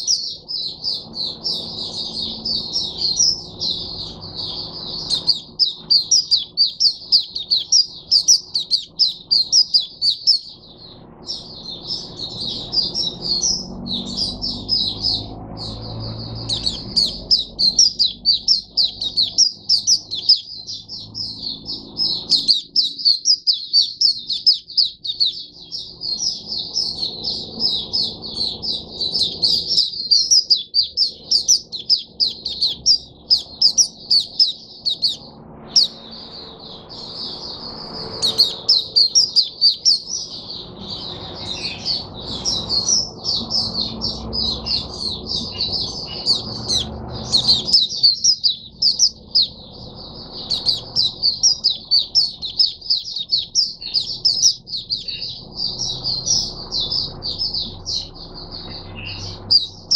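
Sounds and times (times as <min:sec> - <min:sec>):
white-eye singing twittering song: 0:00.0 - 0:59.9.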